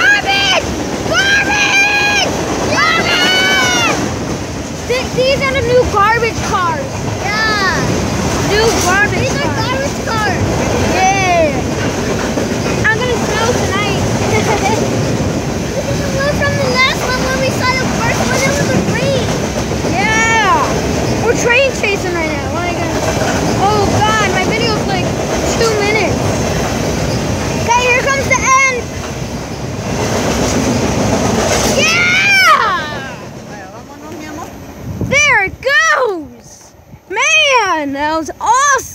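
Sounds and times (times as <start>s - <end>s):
train wheels rumbling on rail: 0.0s - 38.9s.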